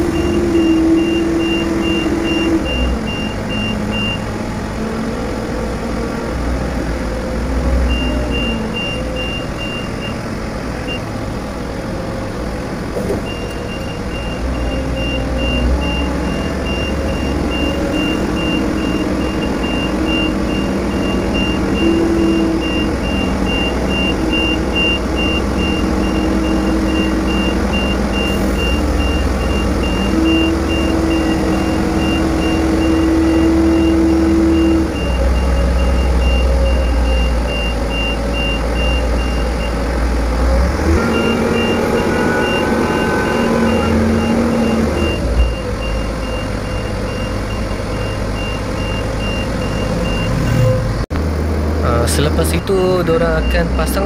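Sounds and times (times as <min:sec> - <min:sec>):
crane diesel engine running: 0:00.0 - 0:54.0
high warning beeps: 0:07.9 - 0:10.2, 0:13.2 - 0:39.8, 0:41.0 - 0:50.7, 0:52.4 - 0:54.0.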